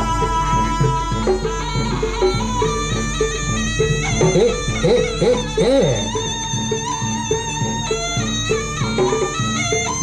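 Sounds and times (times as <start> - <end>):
shrill double-reed instrument: 0.0 - 10.0
struck notes and drums: 0.0 - 10.0.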